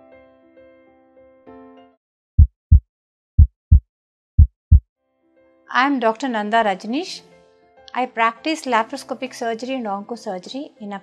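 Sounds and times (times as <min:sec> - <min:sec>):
heartbeat sound effect: 0:02.4 - 0:02.8, 0:03.4 - 0:03.8, 0:04.4 - 0:04.8.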